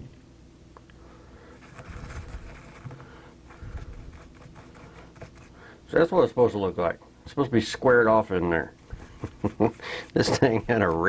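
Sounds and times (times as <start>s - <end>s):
toothbrush scrubbing: 3.6s - 5.6s.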